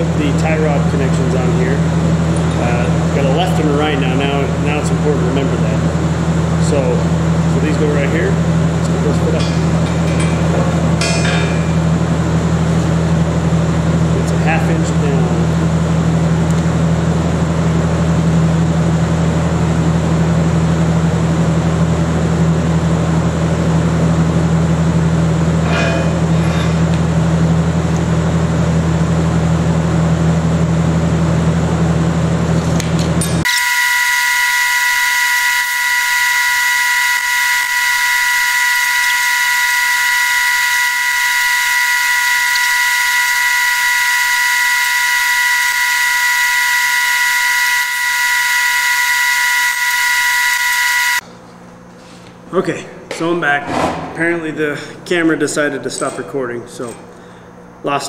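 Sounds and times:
low mechanical hum: 0.0s - 58.0s
high-pitched whine over hiss: 33.5s - 51.2s.

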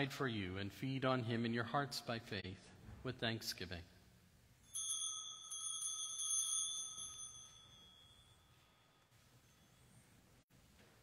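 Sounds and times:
small bell ringing: 4.6s - 10.3s.

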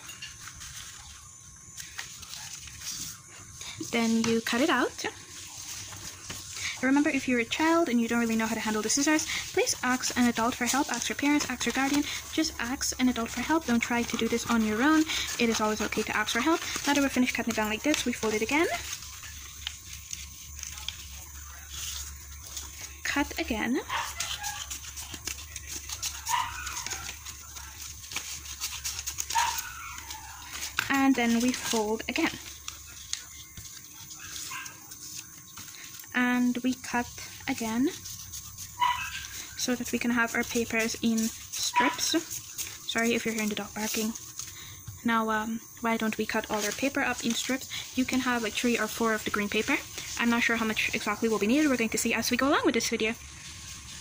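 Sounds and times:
paper rustling: 0.0s - 54.0s
person speaking: 3.1s - 19.4s
scissors cutting paper: 3.8s - 44.4s
dog barking: 23.8s - 24.7s, 26.1s - 27.1s, 29.3s - 30.4s, 38.8s - 39.4s, 41.7s - 42.2s.

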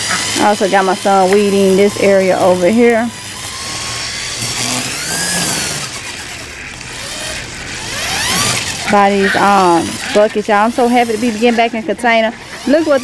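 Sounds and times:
string trimmer revving: 0.0s - 13.0s.

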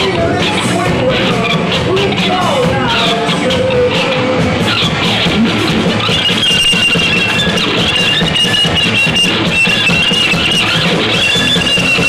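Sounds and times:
bass guitar: 0.0s - 12.0s
distorted electric guitar: 0.0s - 12.0s
shrill high note: 5.0s - 12.0s.

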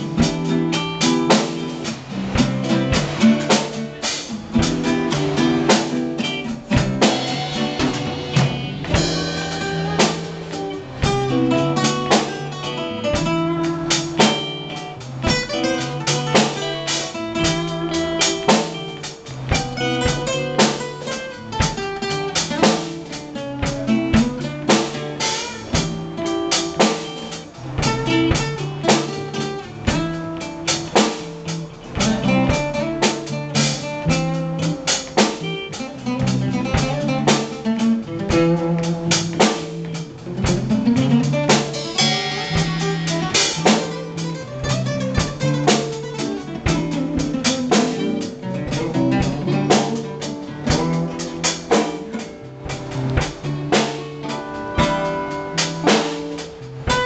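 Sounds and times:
guitar solo: 0.0s - 57.0s
steady drum beat: 0.0s - 57.0s
strummed acoustic guitar chords: 0.0s - 57.0s.

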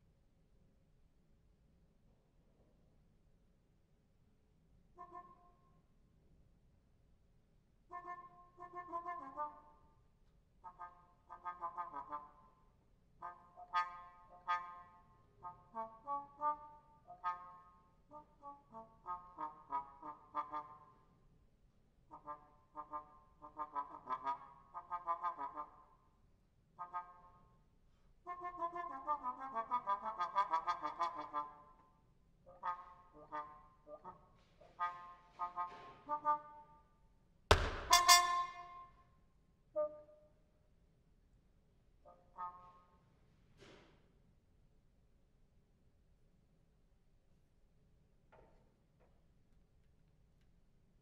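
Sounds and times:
muted bass trombone: 10.6s - 12.4s, 13.2s - 17.6s, 18.7s - 20.9s, 22.1s - 25.8s, 28.3s - 31.6s, 32.5s - 36.6s, 37.5s - 38.8s.

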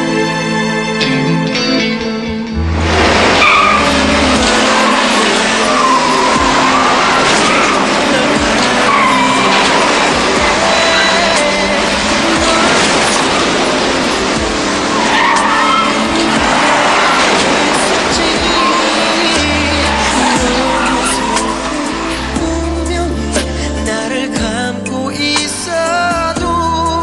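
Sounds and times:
background music: 0.0s - 27.0s
car engine: 1.5s - 26.2s
tyres squealing and skidding: 2.8s - 23.9s.

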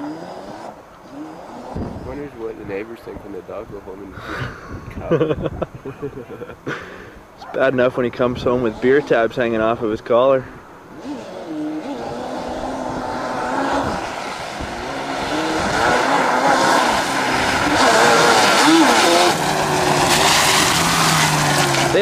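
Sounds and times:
quad engine revving: 0.0s - 3.2s, 8.2s - 9.8s, 10.9s - 22.0s.

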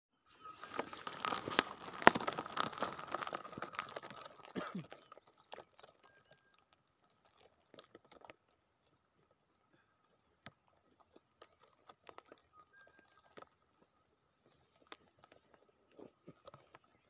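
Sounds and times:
crunching and rustling of dry straw: 0.4s - 17.0s
footsteps on dry straw: 0.6s - 4.9s.

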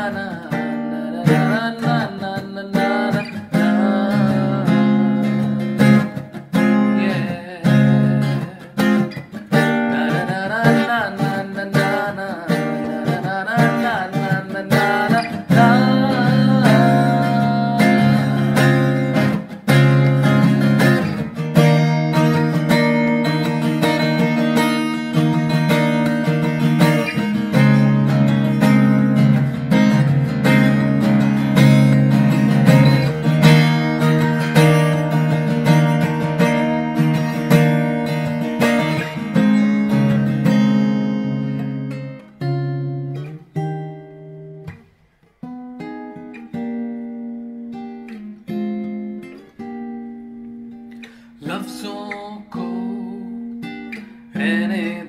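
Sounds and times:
acoustic guitar strumming and picking: 0.0s - 55.0s.

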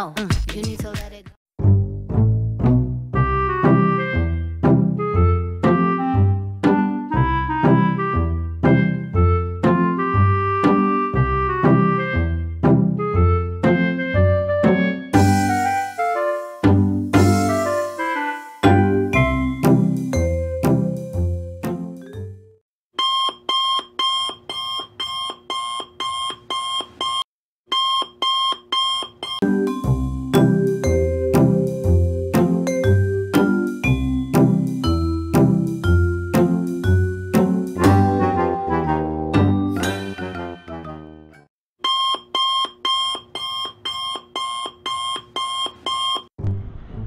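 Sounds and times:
phone alarm beeping: 23.0s - 29.4s, 41.8s - 46.3s.

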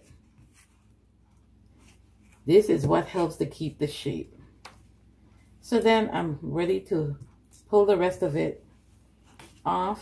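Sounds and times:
fabric hat rustling: 0.0s - 2.5s.

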